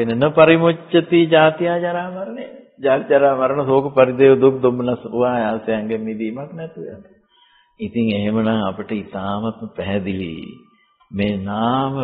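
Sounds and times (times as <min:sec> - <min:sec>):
man chanting: 0:00.0 - 0:07.0, 0:07.8 - 0:12.0.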